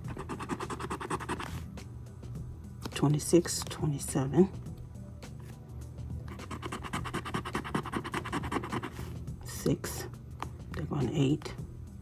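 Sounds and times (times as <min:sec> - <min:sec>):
scratching lottery ticket: 0:00.1 - 0:01.6, 0:06.3 - 0:09.1.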